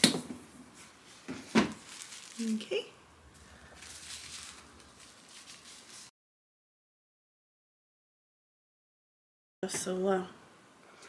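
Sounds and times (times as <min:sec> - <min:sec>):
hands rustling packaging tube: 0:00.7 - 0:06.1.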